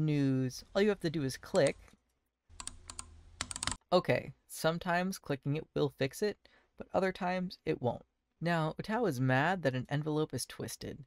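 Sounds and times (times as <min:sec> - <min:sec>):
computer mouse clicking: 0:02.6 - 0:03.8.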